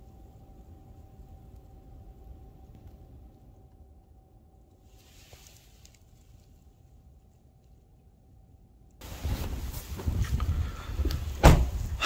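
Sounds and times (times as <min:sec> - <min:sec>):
microphone handling noise: 0:09.0 - 0:12.0
wind noise: 0:09.0 - 0:12.0
sharp thump: 0:11.4 - 0:11.8.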